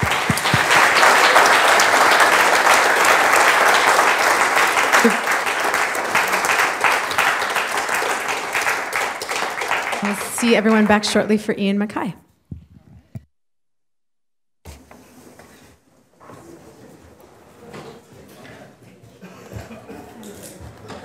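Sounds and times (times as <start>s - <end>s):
audience applauding: 0.0s - 11.2s.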